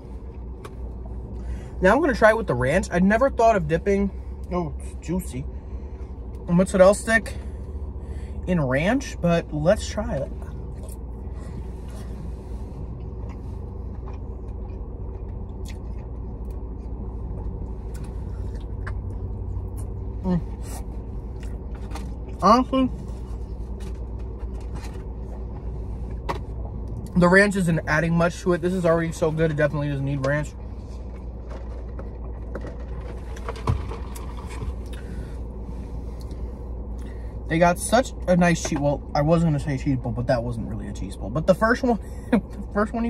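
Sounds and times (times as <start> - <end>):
car engine idling: 0.0 - 43.0
chewing noises: 10.4 - 11.2, 12.8 - 22.4.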